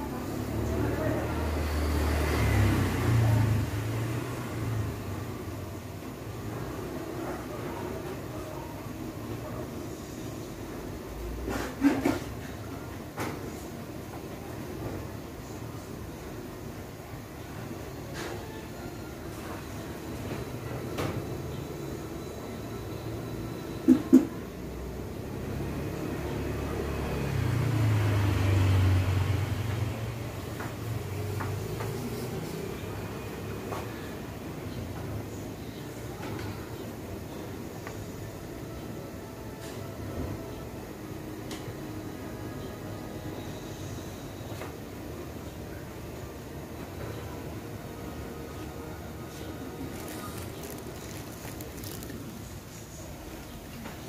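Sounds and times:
low mechanical hum: 0.0 - 54.0
low engine rumble: 46.4 - 54.0.

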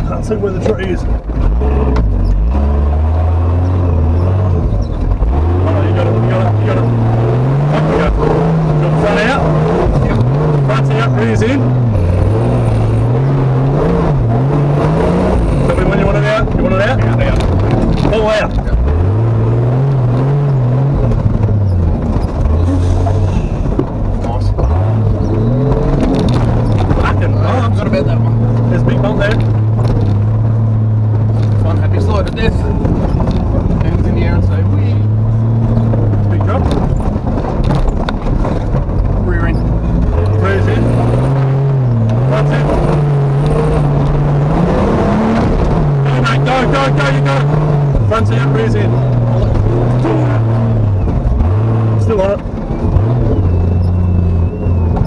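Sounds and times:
engine working under load: 0.0 - 55.0.

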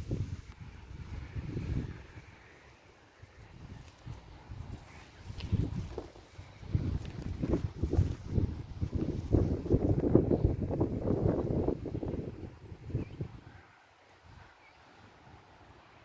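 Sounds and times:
grass rustling against microphone: 0.0 - 13.4.

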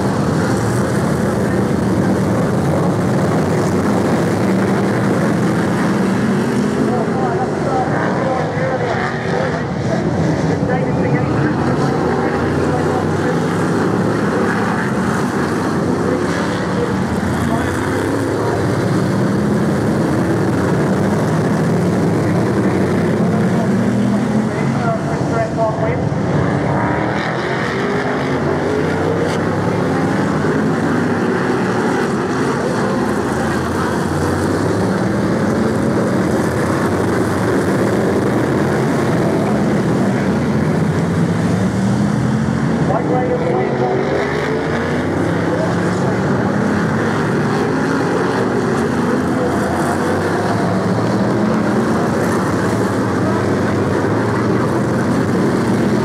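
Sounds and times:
racing car engines: 0.0 - 56.0.

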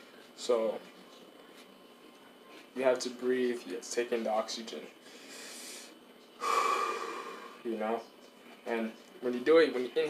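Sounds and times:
man breathing deeply: 5.0 - 7.6.

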